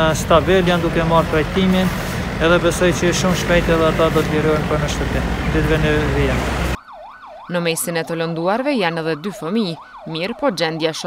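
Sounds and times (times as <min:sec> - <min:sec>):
man speaking: 0:00.0 - 0:06.7.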